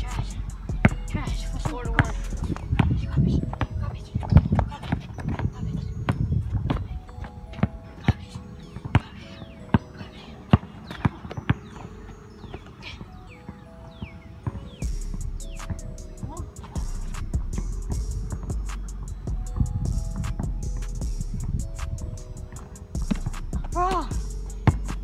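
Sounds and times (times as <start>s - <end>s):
background music: 0.0s - 25.0s
basketball bouncing on court: 0.1s - 5.5s.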